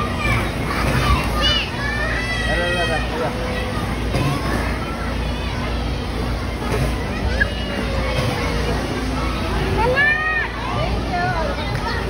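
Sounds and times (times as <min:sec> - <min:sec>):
children calling out: 0:00.0 - 0:11.1
hubbub of voices: 0:00.0 - 0:12.0.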